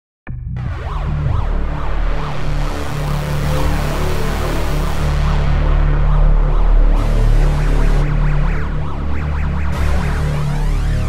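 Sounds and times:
heavy synth bass: 0.3s - 11.0s
synthwave music: 0.3s - 11.0s.

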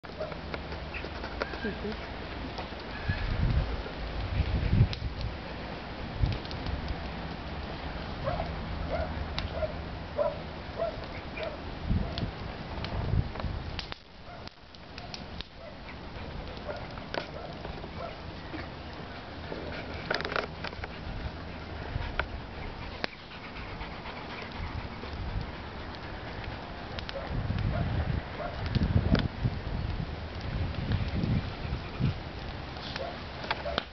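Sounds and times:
paws scraping earth: 0.1s - 4.8s, 14.3s - 28.7s, 30.6s - 33.9s.

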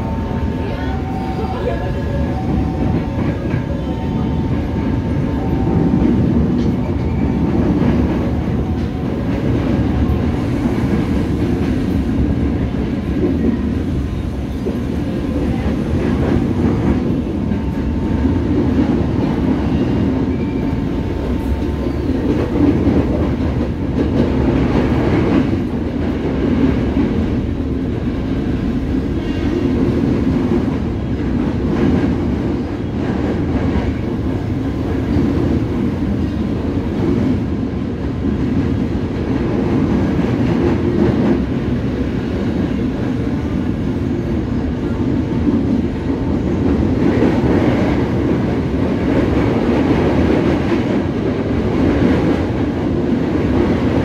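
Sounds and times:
train wheels on rails: 0.0s - 54.0s.

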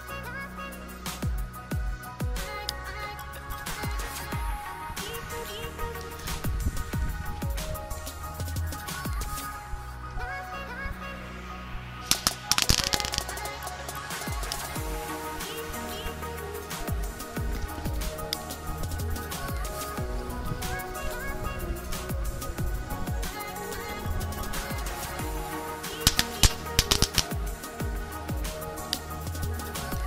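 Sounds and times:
electronic music: 0.0s - 30.0s
firework crackling and banging: 12.1s - 14.8s.

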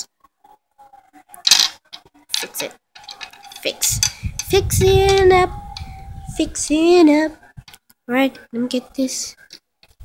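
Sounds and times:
stone scraping and clinking: 1.5s - 5.3s.

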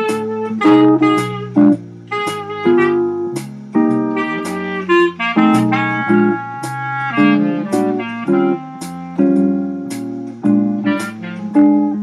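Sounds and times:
clarinet playing blues melody: 0.0s - 12.0s
guitar accompaniment: 0.0s - 12.0s.

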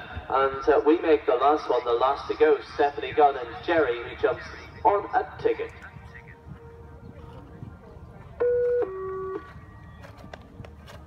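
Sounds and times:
two-note electronic tone: 8.4s - 9.6s.

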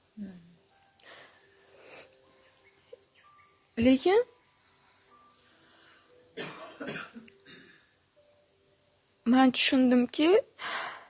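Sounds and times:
person coughing: 6.4s - 7.8s.

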